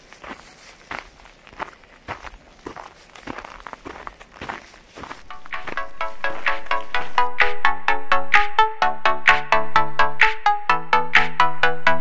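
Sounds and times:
footsteps on snow: 0:00.0 - 0:07.3
music: 0:05.2 - 0:12.0.

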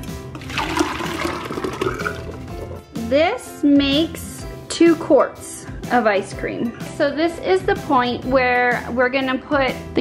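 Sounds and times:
thick liquid pouring into metal canister: 0:00.3 - 0:02.9.

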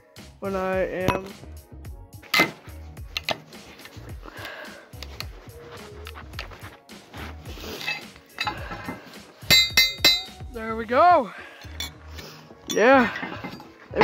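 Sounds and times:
background music: 0:00.0 - 0:14.0
metal tool clinking on wheel rim: 0:07.8 - 0:10.5, 0:11.6 - 0:12.0, 0:12.6 - 0:13.8.

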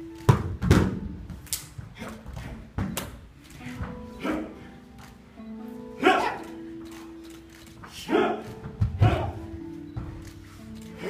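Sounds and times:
sharp loud shouts: 0:06.0 - 0:06.4, 0:08.0 - 0:09.4.

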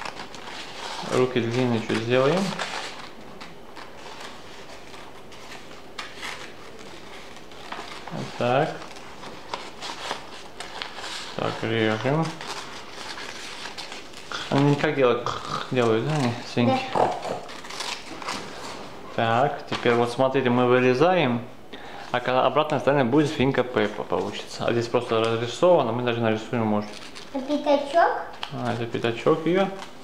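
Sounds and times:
paper rustling: 0:00.0 - 0:15.0, 0:15.8 - 0:20.2, 0:26.8 - 0:30.0
scissors cutting paper: 0:15.8 - 0:18.7.

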